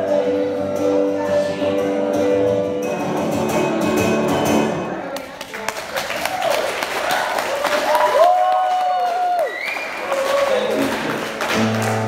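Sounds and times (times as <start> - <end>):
acoustic guitar sliding melody: 0.0 - 5.0
audience clapping: 5.1 - 12.0.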